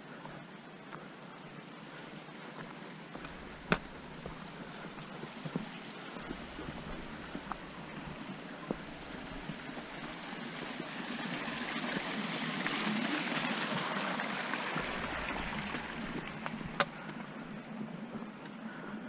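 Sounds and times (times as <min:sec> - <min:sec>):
footsteps on a trail: 0:00.0 - 0:19.0
stream water rushing: 0:02.6 - 0:18.3.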